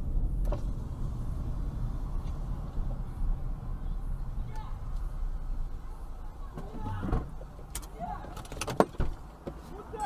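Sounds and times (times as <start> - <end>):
car engine low rumble: 0.0 - 10.0.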